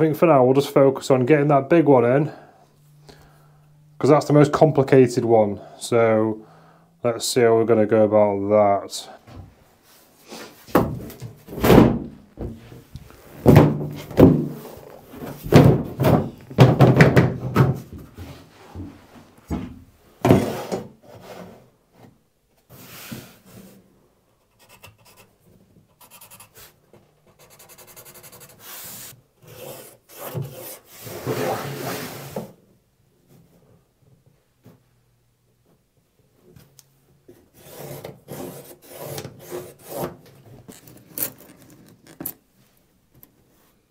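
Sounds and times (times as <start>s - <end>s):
plywood sheet knocking on timber: 13.4s - 14.6s, 15.5s - 17.8s.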